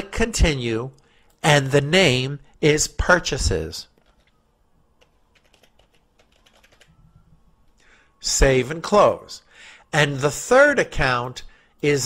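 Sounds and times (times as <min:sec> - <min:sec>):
faint keyboard typing: 0:03.9 - 0:04.4, 0:05.0 - 0:07.8.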